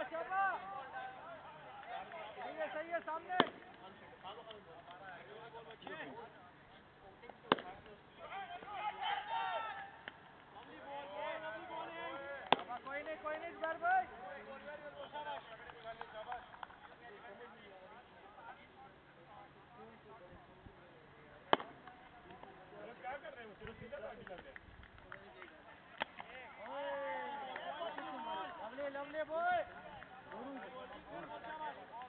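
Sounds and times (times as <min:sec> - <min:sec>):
ball knocking on bat: 0:03.4 - 0:03.7, 0:07.5 - 0:07.7.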